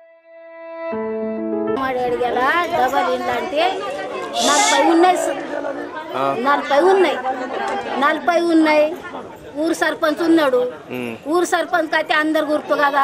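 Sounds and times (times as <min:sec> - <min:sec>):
woman speaking: 0:01.8 - 0:05.7
voices chattering: 0:02.2 - 0:13.0.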